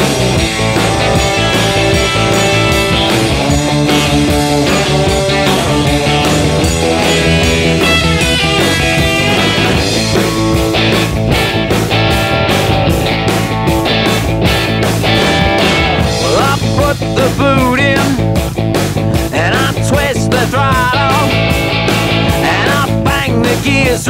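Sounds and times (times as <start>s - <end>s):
drums beating: 0.0s - 24.0s
electric guitar: 0.0s - 24.0s.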